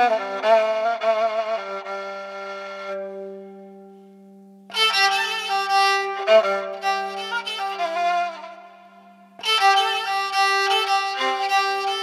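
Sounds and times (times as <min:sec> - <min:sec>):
bowed fiddle long low note: 0:00.0 - 0:12.0.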